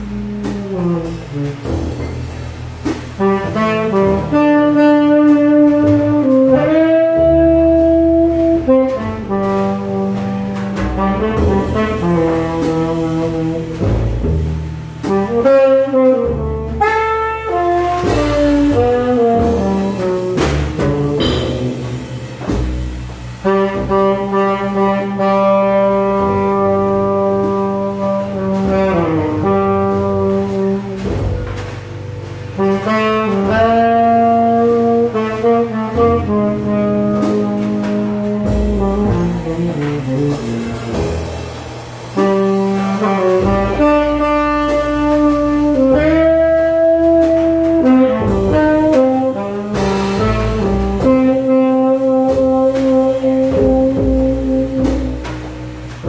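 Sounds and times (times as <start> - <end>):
drums: 0.0 - 56.0
upright double bass: 0.0 - 56.0
saxophone melody: 3.2 - 14.2, 15.0 - 56.0.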